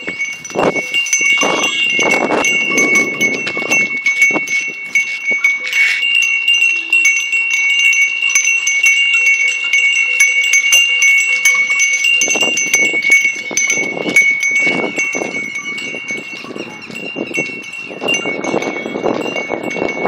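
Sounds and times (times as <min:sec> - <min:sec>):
cattle bells ringing: 0:00.0 - 0:20.0.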